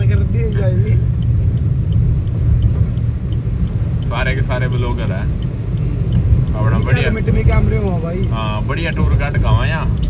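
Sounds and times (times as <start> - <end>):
car driving on wet road: 0.0 - 10.0
faint ticks: 0.0 - 10.0.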